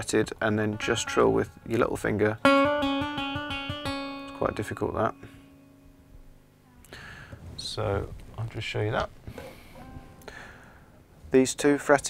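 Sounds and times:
guitar strings ringing faintly: 0.0 - 6.6, 9.3 - 11.0.

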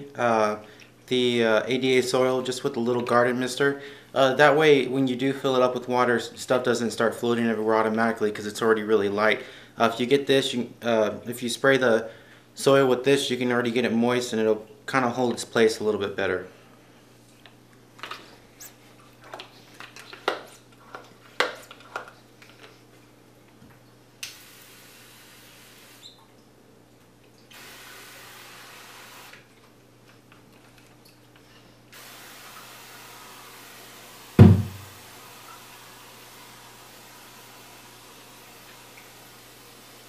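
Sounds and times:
sprayer pump clicks and knocks: 34.4 - 34.9
loud thump: 34.4 - 35.0.

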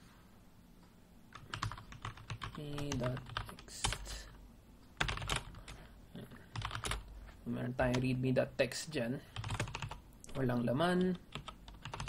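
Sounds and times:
computer keyboard typing: 1.3 - 4.3, 5.0 - 5.8, 6.5 - 7.1, 9.4 - 10.4, 11.0 - 12.0.

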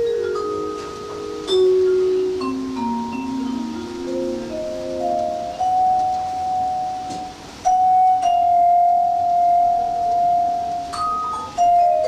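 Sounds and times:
vibraphone notes: 0.0 - 12.0.

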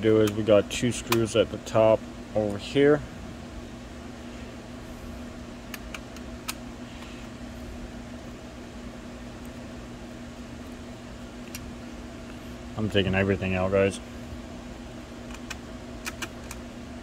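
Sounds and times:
computer fans whirring: 0.0 - 17.0
low hum: 0.0 - 17.0.

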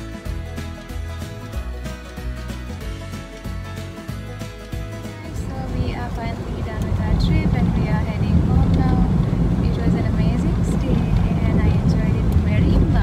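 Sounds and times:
car cabin road rumble: 4.8 - 13.0
person speaking: 4.9 - 9.1.

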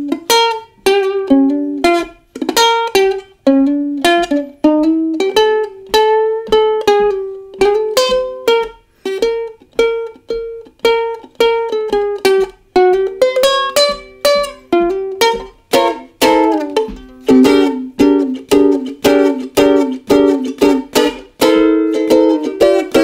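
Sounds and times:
ukulele strummed chords: 0.0 - 23.0.

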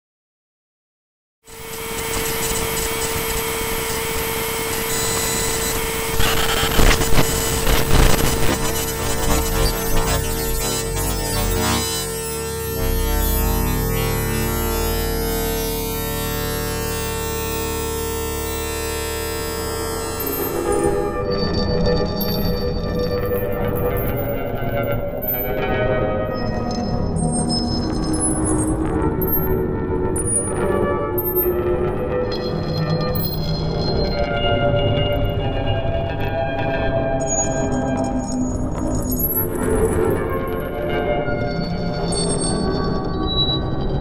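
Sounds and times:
thin high whines: 1.5 - 14.2
electronic drone: 1.5 - 31.1
electrical crackles and pops: 1.8 - 12.8.

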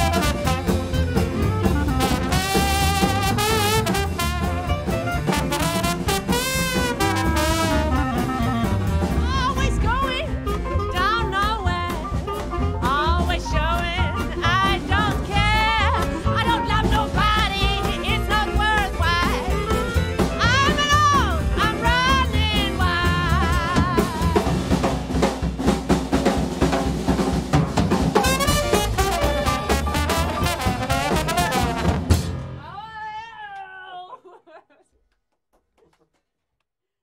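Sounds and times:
drum kit crash: 0.0 - 11.0, 22.5 - 32.6
jazz band playing: 0.0 - 32.7
woman singing: 7.8 - 12.2, 12.8 - 24.8.

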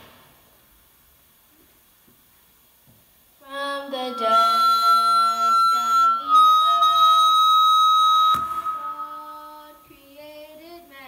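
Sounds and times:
girl singing a hymn: 3.4 - 7.3, 8.5 - 11.0
high feedback whistle: 3.8 - 10.3.

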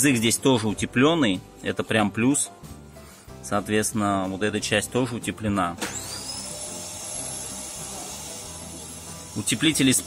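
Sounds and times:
electric motor whirring: 5.9 - 10.0.

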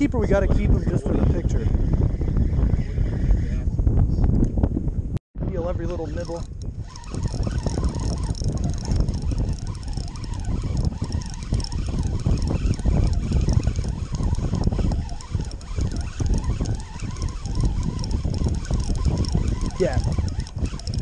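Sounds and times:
wind buffeting microphone: 0.0 - 21.0
fishing reel spinning: 5.6 - 21.0.

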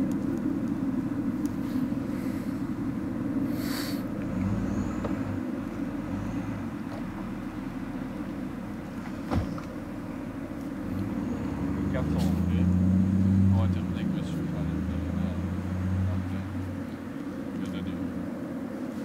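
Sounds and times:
muffled motor vehicle rumble: 0.0 - 19.0.

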